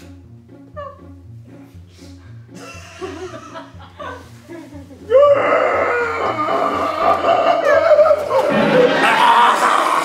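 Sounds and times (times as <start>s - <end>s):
background music with bass line: 0.0s - 9.1s.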